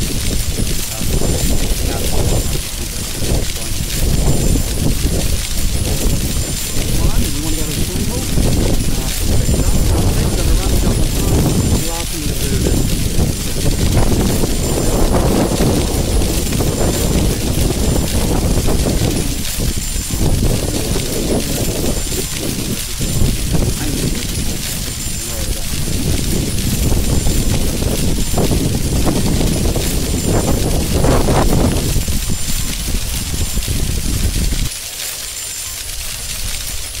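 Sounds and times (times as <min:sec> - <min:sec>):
wind rumble on microphone: 0:00.0 - 0:34.7, 0:35.9 - 0:37.0
man talking: 0:00.8 - 0:04.4, 0:05.8 - 0:13.6, 0:20.1 - 0:24.4, 0:25.0 - 0:25.9.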